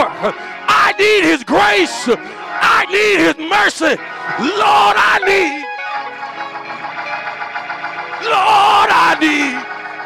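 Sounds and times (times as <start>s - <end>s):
preacher singing: 0.0s - 5.7s, 8.2s - 9.7s
instrumental sustained chords: 0.0s - 10.0s.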